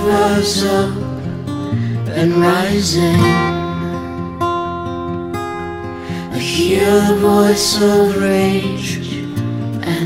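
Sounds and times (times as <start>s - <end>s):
acoustic guitar chords ringing: 0.0s - 10.0s.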